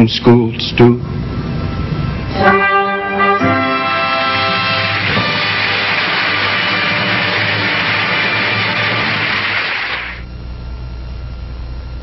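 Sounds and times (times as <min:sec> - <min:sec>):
held orchestral chord: 0:02.3 - 0:10.2
studio audience applauding: 0:03.7 - 0:10.2.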